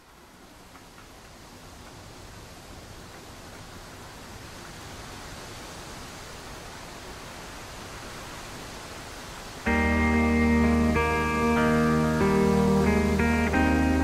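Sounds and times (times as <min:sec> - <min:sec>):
steady rushing noise: 0:00.0 - 0:14.0
guitar music: 0:09.7 - 0:14.0.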